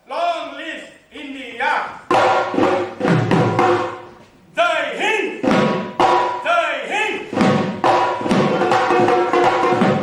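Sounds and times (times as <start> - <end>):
drums struck rhythmically: 2.0 - 4.2, 5.3 - 10.0.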